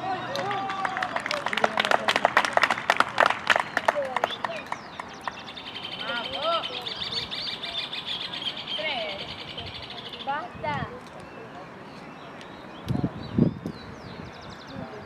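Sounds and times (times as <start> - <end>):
crowd shouting: 0.0 - 1.4
people clapping: 0.0 - 5.6.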